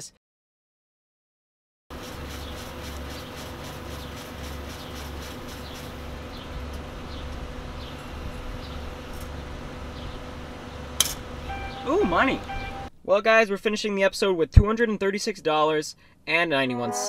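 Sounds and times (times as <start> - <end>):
pulsing motor hum: 1.9 - 12.9.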